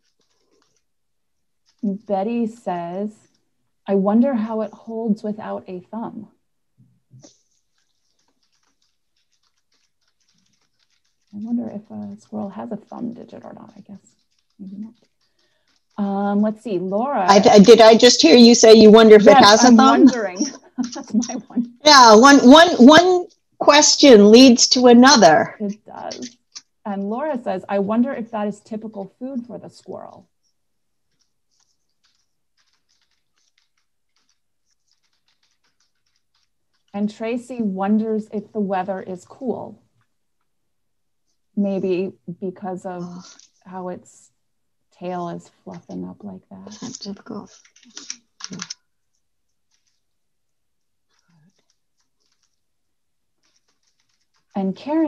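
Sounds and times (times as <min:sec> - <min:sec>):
typing on a keyboard: 0:00.0 - 0:00.9, 0:01.6 - 0:03.4, 0:07.2 - 0:29.0, 0:31.1 - 0:37.6, 0:46.8 - 0:50.2, 0:51.0 - 0:52.7, 0:53.4 - 0:55.0.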